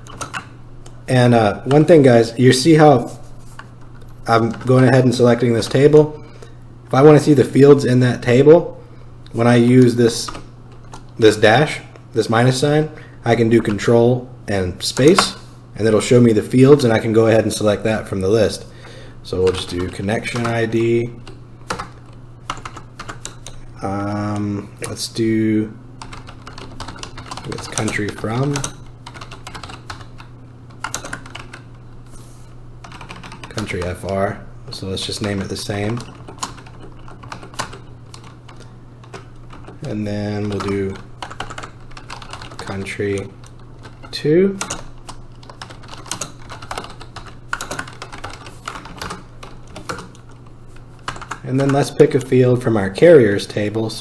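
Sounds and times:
steady low hum: 0.0s - 54.0s
computer keyboard typing: 4.3s - 5.9s, 19.4s - 25.0s, 26.0s - 31.8s, 32.8s - 34.3s, 34.9s - 52.0s.

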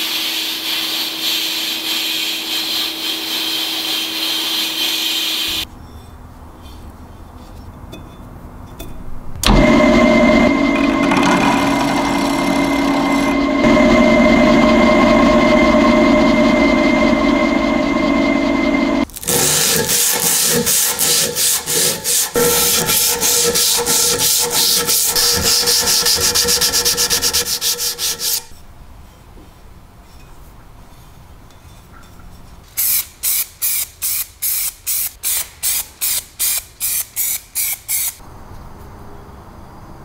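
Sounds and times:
power tool running: 9.4s - 28.5s
fast hand scraping on metal: 19.3s - 28.5s.

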